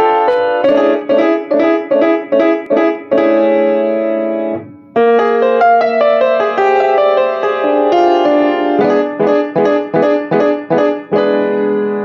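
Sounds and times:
solo piano chords: 0.0 - 12.0.

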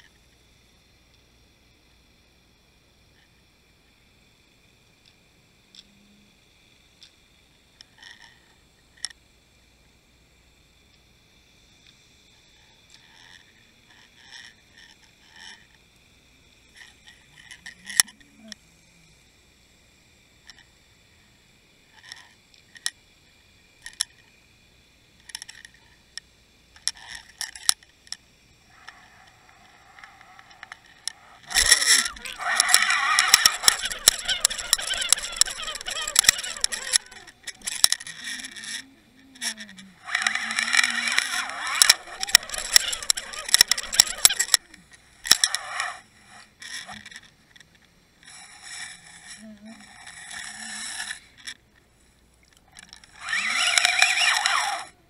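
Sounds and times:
scattered clicks and taps: 40.1 - 44.7.

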